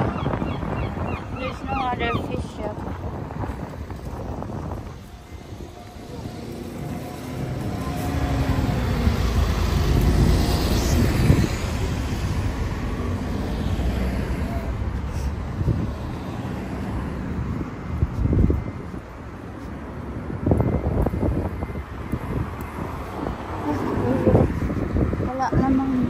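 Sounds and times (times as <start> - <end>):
traffic noise: 0.0 - 26.0
wind on microphone: 0.0 - 26.0.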